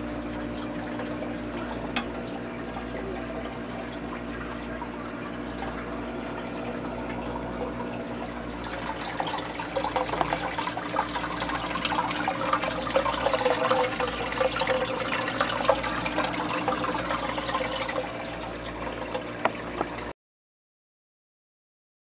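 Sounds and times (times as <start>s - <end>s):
steady low hum: 0.0s - 19.9s
fish tank water trickling: 0.0s - 20.1s
small sharp drips: 0.0s - 20.1s.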